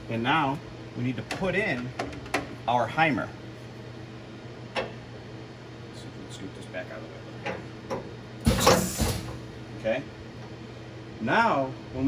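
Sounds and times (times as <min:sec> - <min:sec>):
mill low hum: 0:00.0 - 0:12.0.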